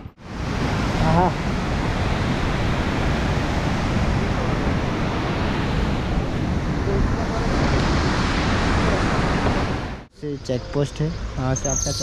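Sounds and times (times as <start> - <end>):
wind rushing on microphone: 0.0 - 10.1.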